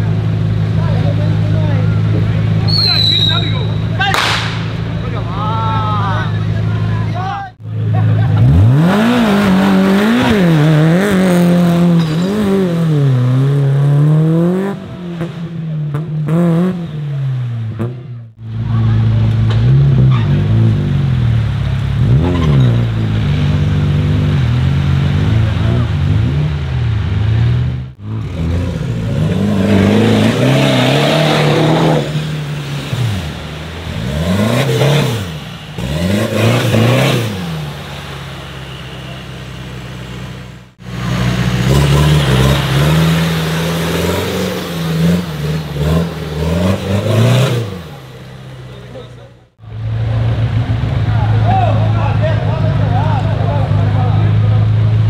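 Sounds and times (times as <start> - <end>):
off-road engines revving: 0.0 - 55.0.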